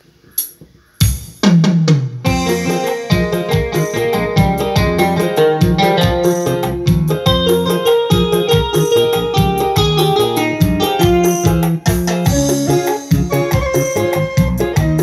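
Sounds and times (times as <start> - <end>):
electronic keyboard piano melody: 2.2 - 15.0.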